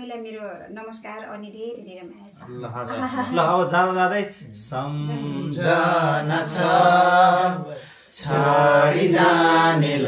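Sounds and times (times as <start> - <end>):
man singing unaccompanied: 4.5 - 10.0.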